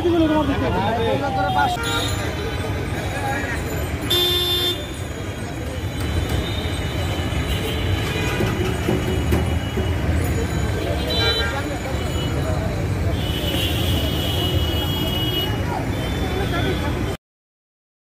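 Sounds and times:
traffic engine rumble: 0.0 - 17.2.

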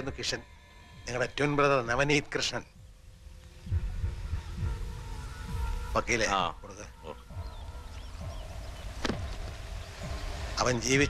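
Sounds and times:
faint bird chirps: 0.0 - 11.0
low rumble: 0.0 - 11.0.

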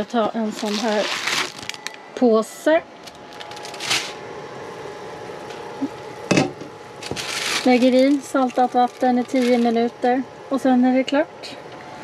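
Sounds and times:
plastic bag crinkling: 0.5 - 2.0, 3.0 - 4.2, 7.0 - 10.1.

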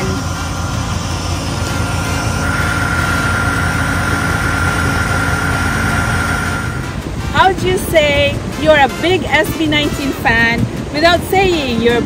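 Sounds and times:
engine low rumble: 0.0 - 12.0
high engine whine: 0.0 - 12.0.

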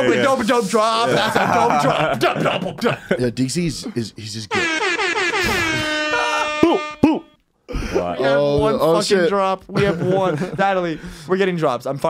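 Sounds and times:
air horn blast sliding down: 4.5 - 7.3.

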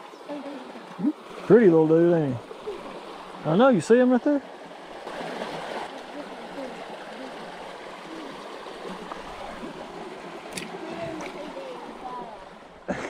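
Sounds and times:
creek water running over rock: 0.0 - 12.9.

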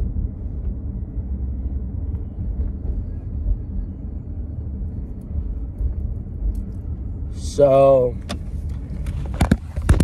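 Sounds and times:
low rumble of car interior: 0.0 - 10.0.

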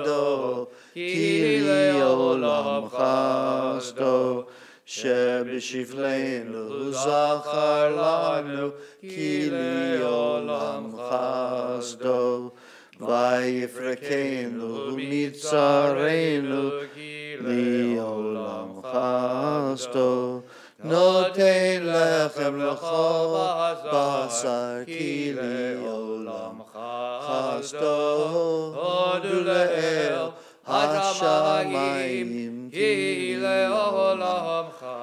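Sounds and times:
man chanting unaccompanied: 18.7 - 35.0.

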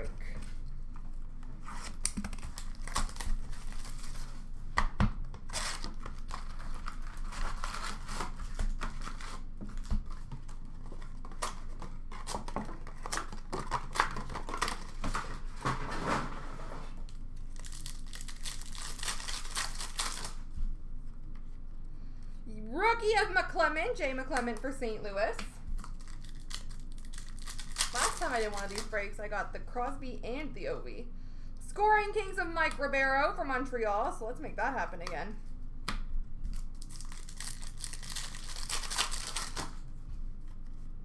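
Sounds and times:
card packs tearing open: 1.7 - 4.4, 5.4 - 15.5, 17.5 - 20.4, 25.8 - 28.9, 36.5 - 39.8
wrappers crinkling: 1.8 - 4.5, 5.5 - 15.4, 17.4 - 20.5, 25.8 - 29.0, 36.5 - 39.8.

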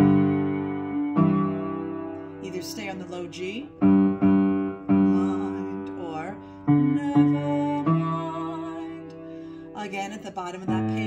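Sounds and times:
piano playing low bass notes: 0.0 - 11.0
person singing: 5.0 - 9.2.

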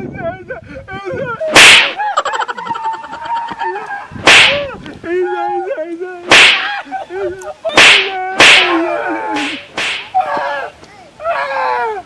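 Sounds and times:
whip cracks: 1.6 - 2.0, 4.2 - 4.7, 6.3 - 6.8, 7.8 - 10.2
man wailing and crying out: 6.6 - 12.0.

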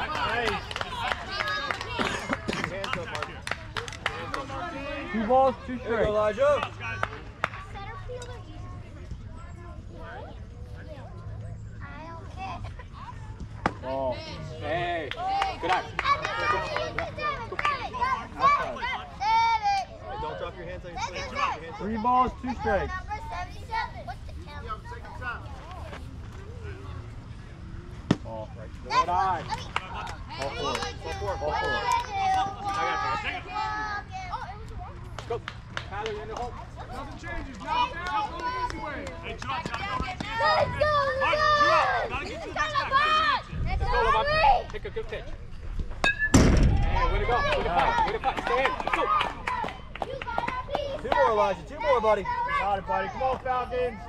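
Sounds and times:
voices calling and cheering: 0.0 - 54.0
loud thump: 46.1 - 47.2.

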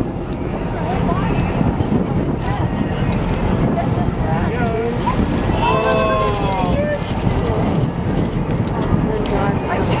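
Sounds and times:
boat engine rumble: 0.0 - 10.0
wind on microphone: 0.0 - 10.0
faint voices: 0.1 - 10.0.

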